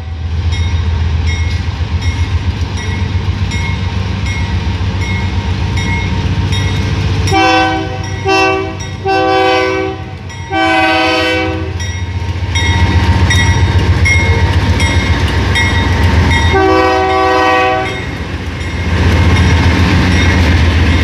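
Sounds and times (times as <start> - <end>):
train wheels on rails: 0.0 - 21.0
locomotive air horn blasts: 7.3 - 11.8, 16.5 - 18.0.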